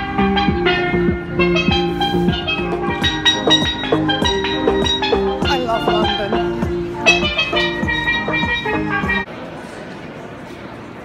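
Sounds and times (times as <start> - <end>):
steel drum melody: 0.0 - 9.3.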